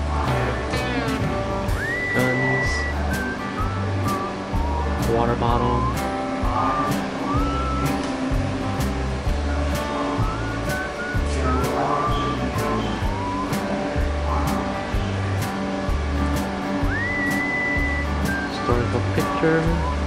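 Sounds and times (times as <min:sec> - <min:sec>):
music with beat and bass: 0:00.0 - 0:20.0
high whistle-like melody: 0:00.3 - 0:08.6, 0:09.3 - 0:15.2, 0:15.9 - 0:20.0.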